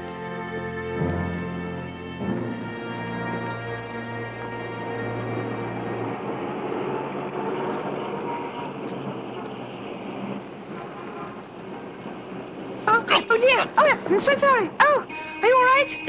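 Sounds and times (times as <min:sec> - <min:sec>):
held music chord: 0:00.0 - 0:11.6
passing crowds: 0:00.0 - 0:16.0
traffic: 0:00.0 - 0:16.0.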